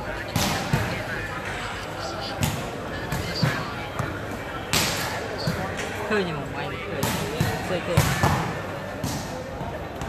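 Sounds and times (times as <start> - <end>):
crowd chatter: 0.0 - 10.0
volleyball slaps: 4.7 - 6.0, 7.0 - 9.4.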